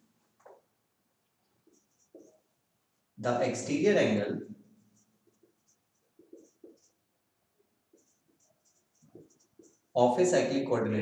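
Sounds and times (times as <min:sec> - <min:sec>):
marker writing on whiteboard: 0:00.4 - 0:00.7, 0:01.5 - 0:10.5.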